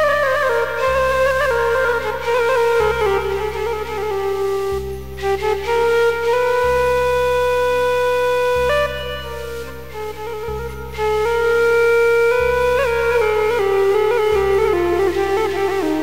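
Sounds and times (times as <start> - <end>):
electronic keyboard melody: 0.0 - 16.0
low sustained keyboard notes: 0.0 - 16.0.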